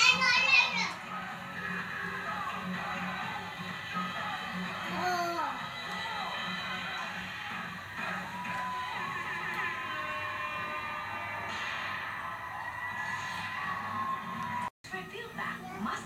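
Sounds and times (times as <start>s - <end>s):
television music: 0.0s - 16.0s
television voices: 0.0s - 16.0s.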